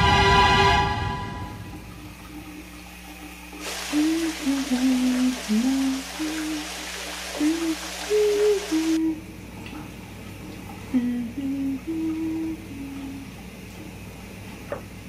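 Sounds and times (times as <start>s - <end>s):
music: 0.0s - 1.7s
running shower hiss: 1.4s - 9.2s
woman humming: 3.9s - 9.3s, 10.9s - 13.3s.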